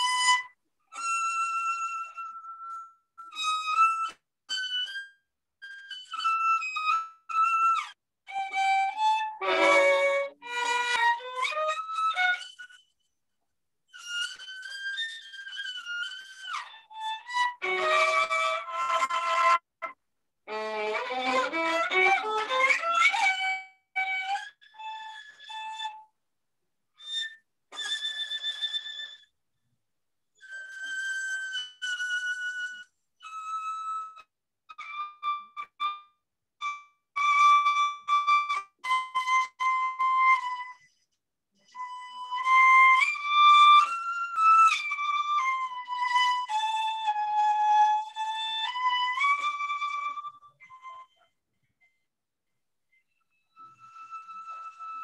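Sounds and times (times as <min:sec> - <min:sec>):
solo violin legato: 0:00.0 - 0:12.8, 0:13.9 - 0:26.0, 0:30.4 - 0:40.9, 0:41.7 - 0:51.2, 0:53.5 - 0:55.0.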